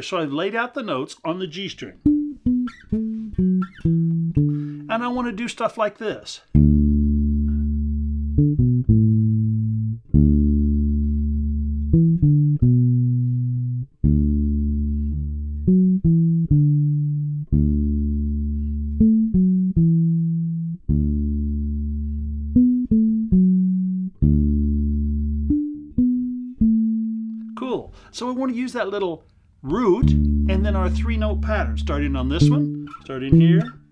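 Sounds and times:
electric bass guitar fill: 2.0 - 4.9, 6.5 - 28.1, 29.7 - 33.9.

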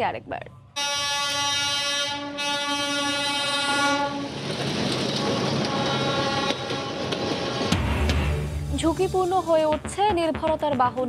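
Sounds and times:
train horn blast: 0.8 - 4.4, 5.1 - 8.2
train passing close by: 0.8 - 9.8.

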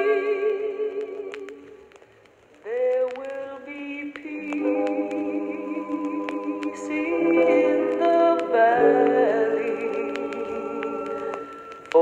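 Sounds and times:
small clicks: 0.0 - 7.1
voices singing in close harmony: 4.2 - 12.0.

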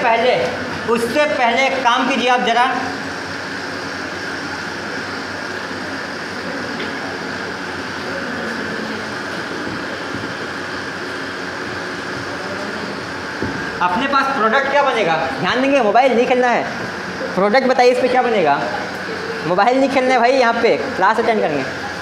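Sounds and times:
steady whooshing room noise: 0.0 - 22.0.

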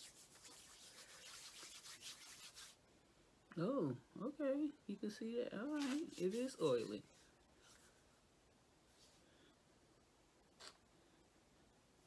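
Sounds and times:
oily palms rubbing together: 0.0 - 2.8, 5.6 - 8.0.

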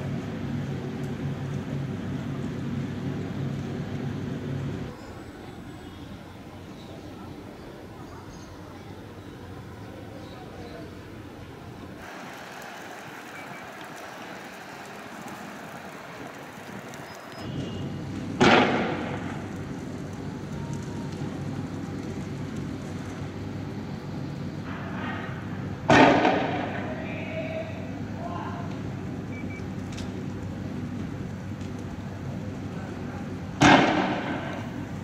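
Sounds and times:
outdoor street noise: 0.0 - 35.0
tear gas rounds firing bangs: 18.4 - 19.5, 25.9 - 26.9, 33.6 - 34.9.

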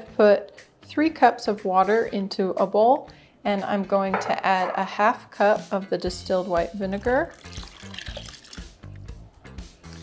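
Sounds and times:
background music: 0.0 - 10.0
liquid pouring into water: 7.0 - 8.8.

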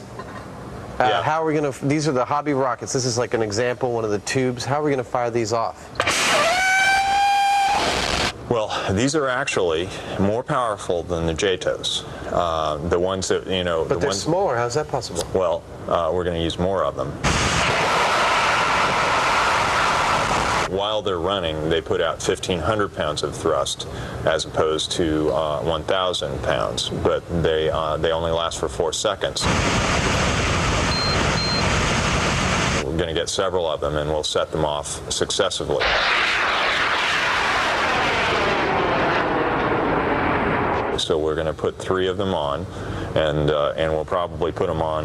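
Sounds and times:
rocket motor rushing: 6.0 - 8.4, 17.2 - 20.7, 35.8 - 41.0.

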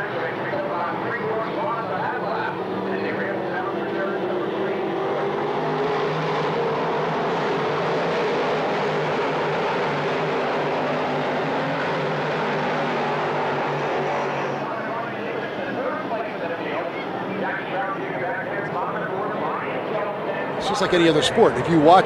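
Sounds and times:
race car engines droning: 0.0 - 22.0.

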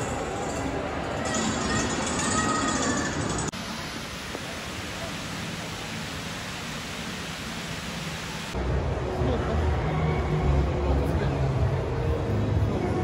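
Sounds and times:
steady rushing noise: 3.5 - 9.3.

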